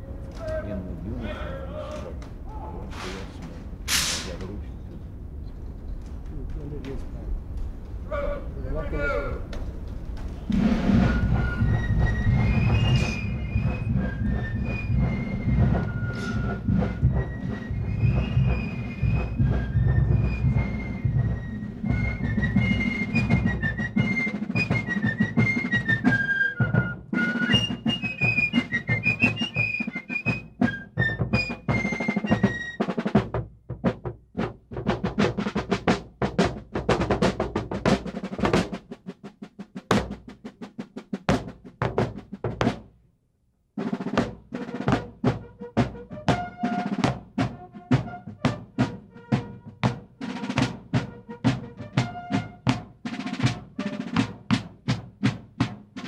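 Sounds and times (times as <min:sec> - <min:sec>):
sharp snare drum strokes: 0:03.9 - 0:04.6, 0:10.4 - 0:42.9, 0:43.8 - 0:56.0
heavy steady drumming: 0:10.4 - 0:43.0, 0:43.8 - 0:56.0.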